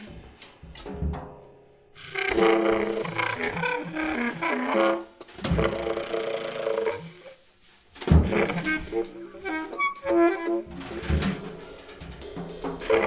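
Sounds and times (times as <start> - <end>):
bass clarinet phrases: 2.0 - 7.4, 8.1 - 11.3.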